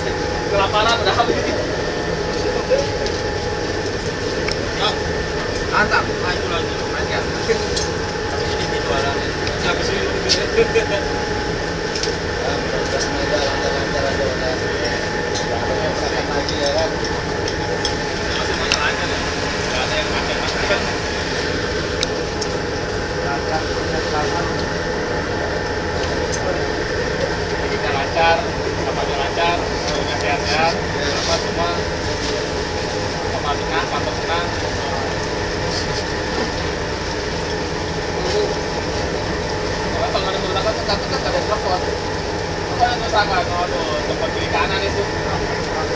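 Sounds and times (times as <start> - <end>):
diesel engine rumbling: 0.0 - 45.9
indistinct voices: 0.0 - 45.9
ship machinery droning: 0.0 - 45.9.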